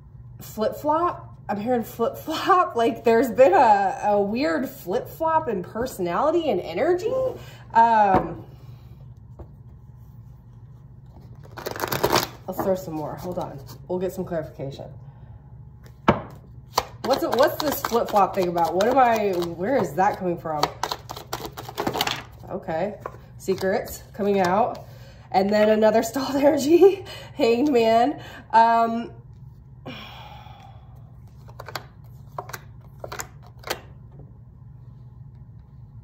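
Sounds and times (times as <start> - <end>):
cards being shuffled: 9.4 - 13.8, 15.8 - 24.8, 31.2 - 34.0.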